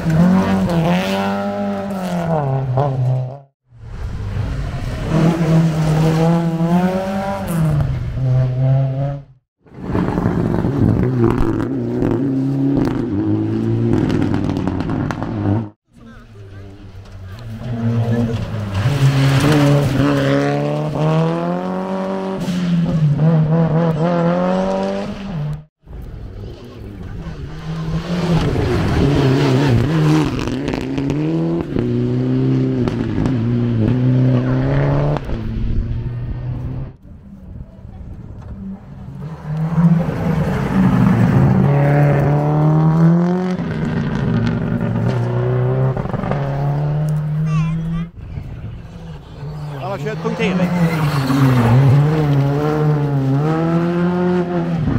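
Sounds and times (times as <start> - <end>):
rally car engines revving: 0.0 - 54.9.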